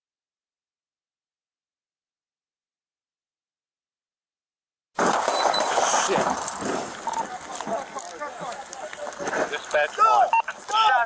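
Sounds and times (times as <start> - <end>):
rustling on microphone: 5.0 - 10.7.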